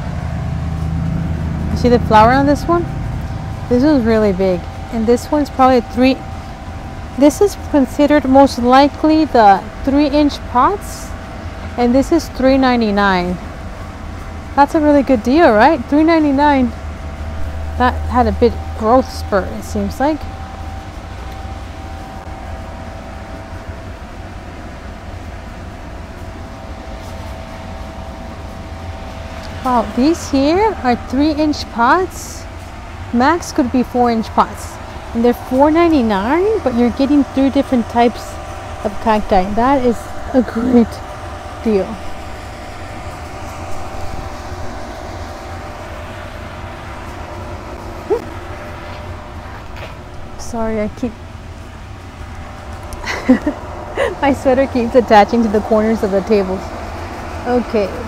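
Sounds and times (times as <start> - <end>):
faint hum: 0.0 - 58.0
low mechanical rumble: 0.0 - 58.0
machine drone: 0.0 - 58.0.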